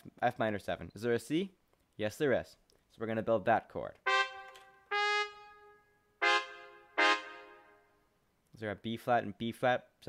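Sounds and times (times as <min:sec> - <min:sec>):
sampled trumpet notes: 0:04.0 - 0:08.0.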